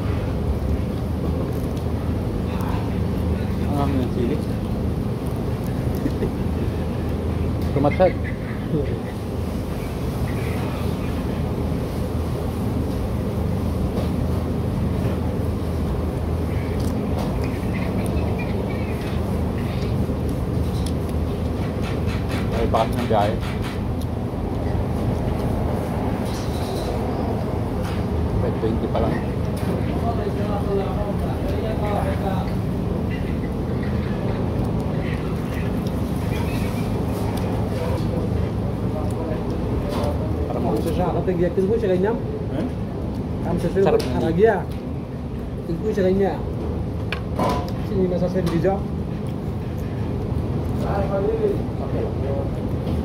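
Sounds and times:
distant voices: 0:00.0 - 0:53.0
steady low hum: 0:00.0 - 0:53.0.

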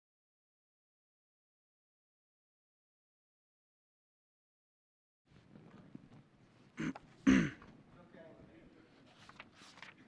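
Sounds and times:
person clearing throat: 0:06.8 - 0:07.7.

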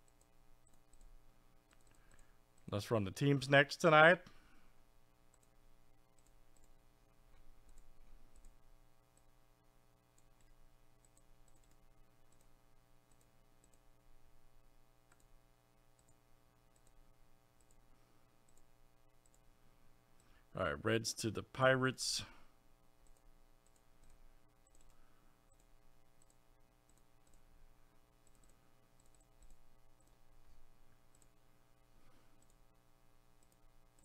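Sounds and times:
computer mouse clicks: 0:00.0 - 0:02.7, 0:05.3 - 0:08.6, 0:10.1 - 0:13.9, 0:15.1 - 0:15.3, 0:15.9 - 0:17.0, 0:17.6 - 0:17.8, 0:18.4 - 0:19.5, 0:23.0 - 0:27.5, 0:28.2 - 0:30.2, 0:31.1 - 0:31.4, 0:32.4 - 0:32.6, 0:33.4 - 0:34.0
low electrical hum: 0:00.0 - 0:34.0.

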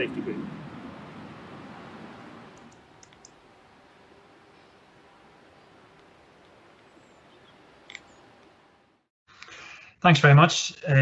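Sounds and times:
outdoor background noise: 0:00.0 - 0:11.0
faint high bird chirps: 0:06.8 - 0:08.3.

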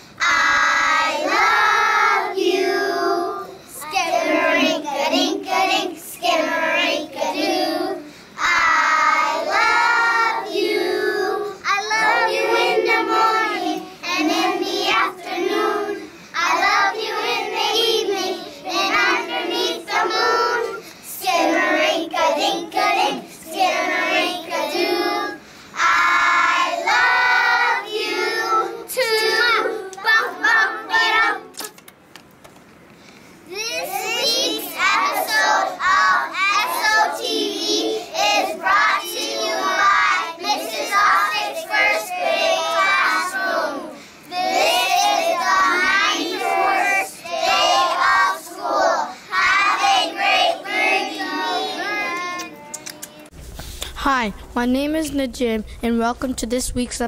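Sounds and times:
young children singing: 0:00.0 - 0:31.6, 0:33.5 - 0:53.4.

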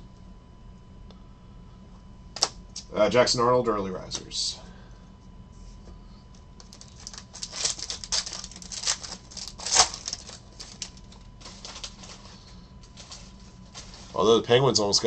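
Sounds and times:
foil wrapper crinkling and tearing: 0:06.6 - 0:14.3.

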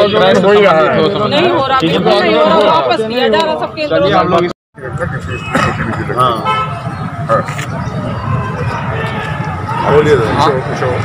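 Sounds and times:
men's voices: 0:00.0 - 0:11.0
street traffic rumble: 0:00.0 - 0:11.0.

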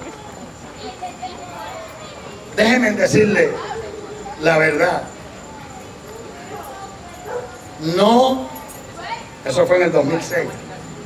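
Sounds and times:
man speaking into microphone: 0:02.6 - 0:03.6.

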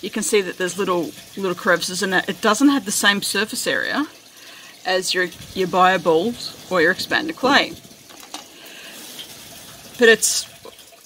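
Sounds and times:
water running: 0:00.0 - 0:11.0.

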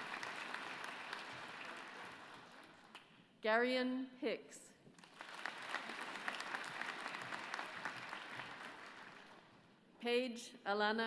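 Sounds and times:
audience applauding: 0:00.0 - 0:03.0, 0:05.0 - 0:09.5.

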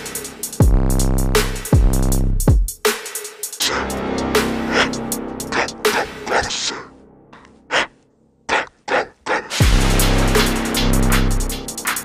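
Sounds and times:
electronic dance music: 0:03.6 - 0:06.8.

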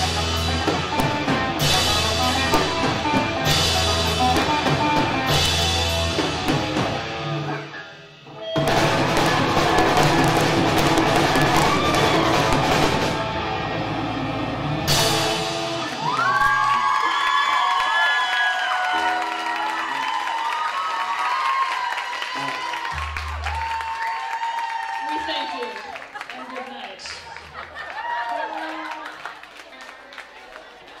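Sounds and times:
live rock band playing: 0:00.0 - 0:16.8.

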